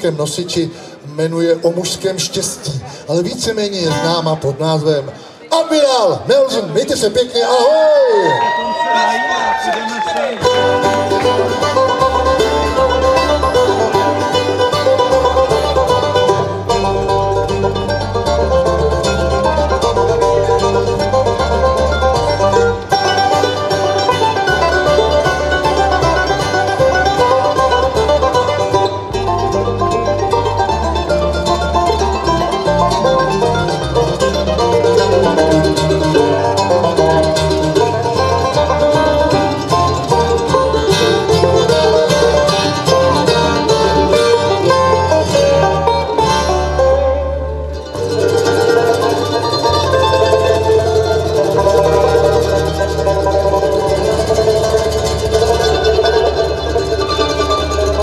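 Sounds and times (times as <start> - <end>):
banjo picking: 0.0 - 7.4, 10.3 - 58.0
mandolin picking: 0.0 - 7.4, 10.3 - 58.0
upright bass steady beat: 10.4 - 47.1
acoustic guitar picking: 10.4 - 58.0.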